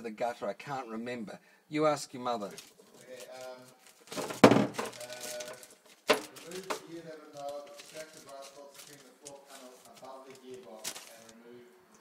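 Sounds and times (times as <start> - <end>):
handling noise: 2.5 - 11.4.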